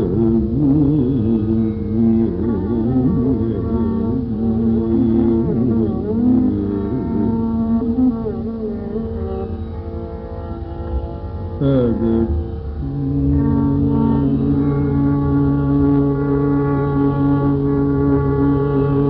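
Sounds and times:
ornamented melodic line: 0.0 - 19.0
steady drone: 0.0 - 19.0.

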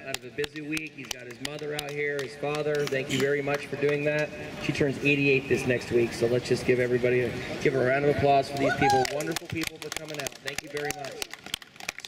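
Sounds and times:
crowd clapping: 0.0 - 4.2, 8.5 - 12.0.

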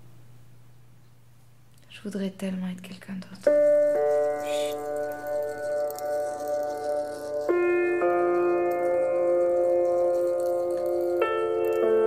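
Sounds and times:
sustained background chords: 3.4 - 12.0.

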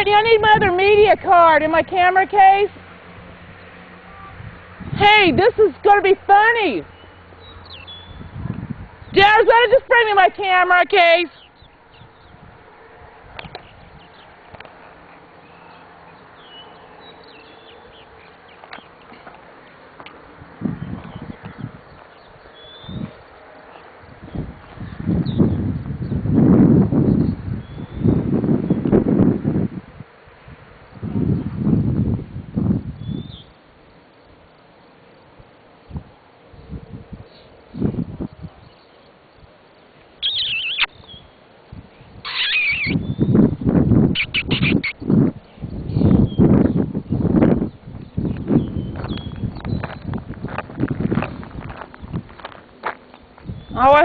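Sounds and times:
birds chirping: 3.5 - 8.4, 9.0 - 12.8, 13.4 - 26.2, 36.6 - 41.4, 42.0 - 54.0
low rumbling on microphone: 24.0 - 30.1, 30.9 - 33.4, 42.9 - 52.5.

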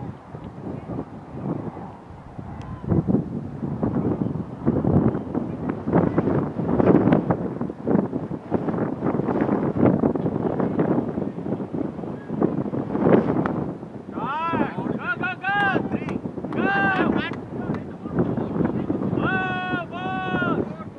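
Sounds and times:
indistinct background talk: 0.0 - 3.1, 14.1 - 20.9
wind noise on microphone: 0.0 - 20.9.

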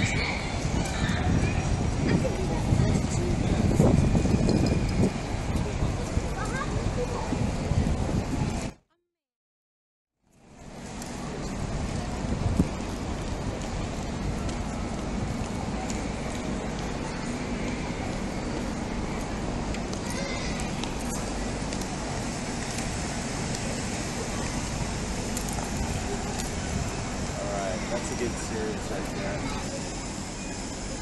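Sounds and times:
traffic noise: 0.0 - 8.8, 10.2 - 31.0.

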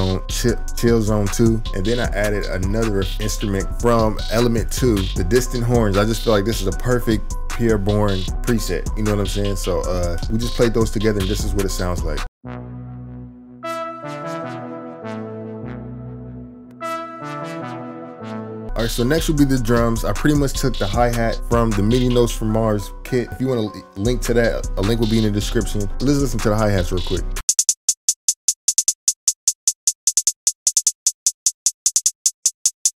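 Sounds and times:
drum machine hi-hat ticks: 0.0 - 12.3, 24.1 - 33.0
synth brass melody: 12.0 - 21.5.

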